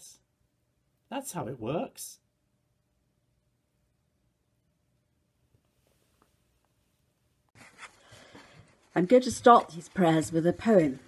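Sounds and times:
background hiss: 0:05.4 - 0:07.5.

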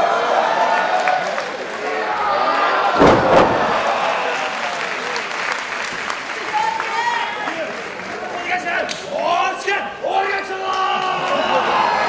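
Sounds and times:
applause: 0:00.5 - 0:02.4, 0:03.8 - 0:09.1, 0:10.6 - 0:12.0
crowd shouting: 0:02.4 - 0:04.6
body slammed onto ring mat: 0:03.0 - 0:04.0.

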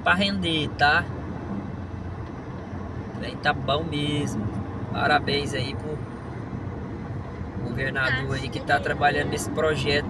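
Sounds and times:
car road and engine noise: 0:00.0 - 0:10.0.

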